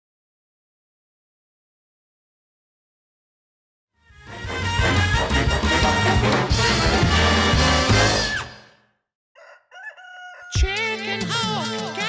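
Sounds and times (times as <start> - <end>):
orchestral cartoon music: 4.0 - 8.8
faint rooster crowing: 9.4 - 10.7.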